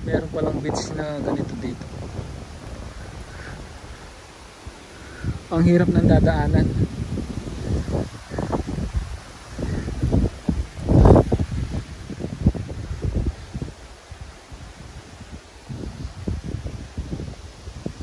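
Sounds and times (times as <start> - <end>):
leaves rustling: 0.0 - 18.0
wind buffeting microphone: 0.0 - 18.0.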